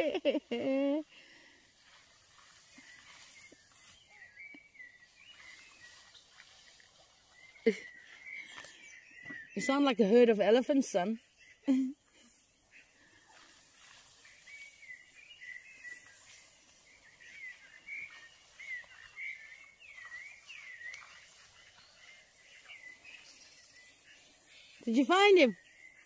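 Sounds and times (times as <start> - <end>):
quiet outdoor hiss: 0.0 - 26.0
bird chirping: 1.8 - 26.0.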